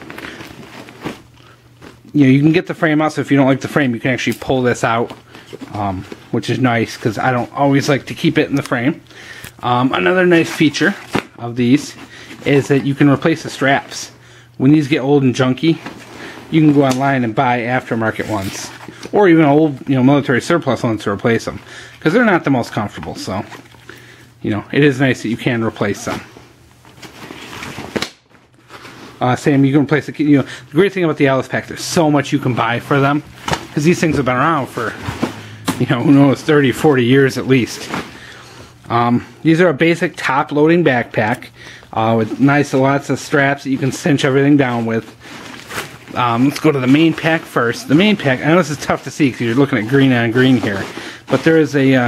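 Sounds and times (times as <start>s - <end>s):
backpack rustling: 0.0s - 2.1s, 32.4s - 38.8s, 43.6s - 52.0s
nylon pack fabric rustling: 0.0s - 52.0s.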